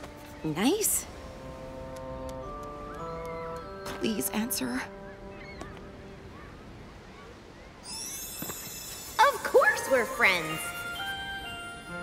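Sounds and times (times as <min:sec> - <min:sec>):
faint bird calls: 0:02.9 - 0:07.9
high sparkling magic shimmer: 0:07.8 - 0:12.0.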